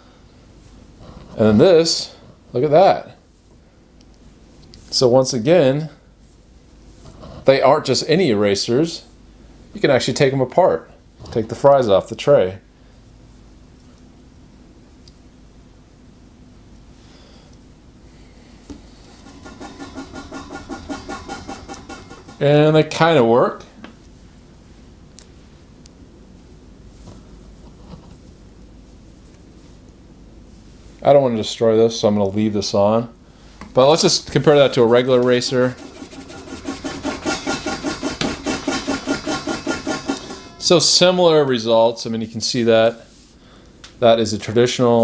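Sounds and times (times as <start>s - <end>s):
eraser rubbing on paper: 35.3s - 40.6s.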